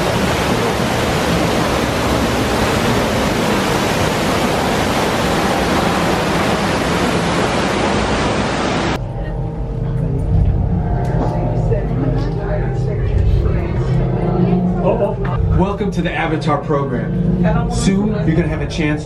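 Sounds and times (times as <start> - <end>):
waterfall rushing: 0.0 - 9.0
low rumble: 0.0 - 19.0.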